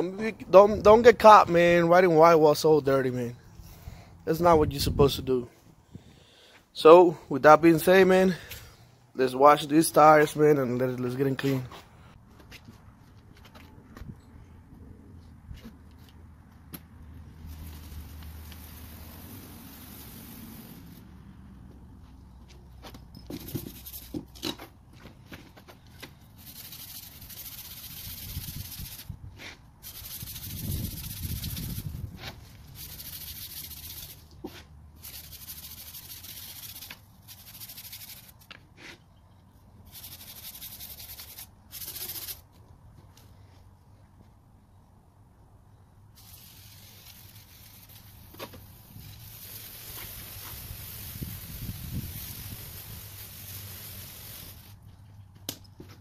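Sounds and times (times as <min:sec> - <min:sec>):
hose nozzle spraying water: 0:17.4 - 0:21.1, 0:26.4 - 0:29.1, 0:29.8 - 0:32.0, 0:32.7 - 0:34.4, 0:35.0 - 0:38.4, 0:39.9 - 0:42.4, 0:46.2 - 0:54.8.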